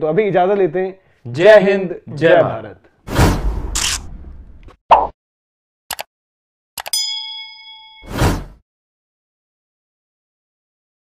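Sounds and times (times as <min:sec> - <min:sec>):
high ringing chime: 0:06.9 - 0:08.2.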